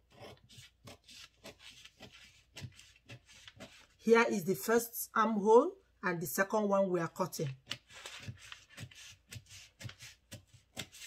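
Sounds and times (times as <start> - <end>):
scissors snipping paper: 0.1 - 3.9, 7.5 - 11.0.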